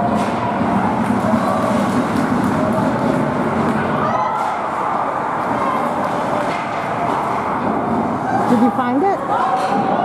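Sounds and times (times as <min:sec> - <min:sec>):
ice rink rumble: 0:00.0 - 0:10.0.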